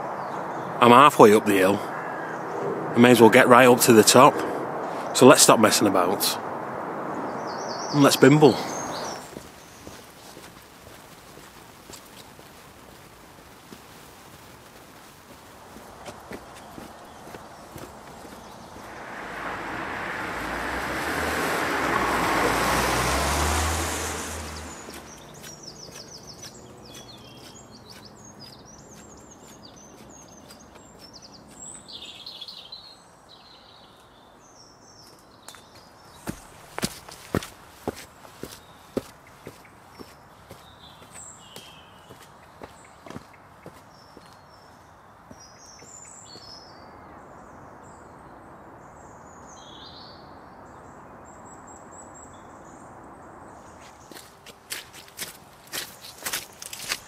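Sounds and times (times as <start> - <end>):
birds chirping: 0.0 - 50.2, 50.8 - 57.0
loud rushing noise: 15.6 - 25.5
footsteps climbing steps: 36.3 - 41.2.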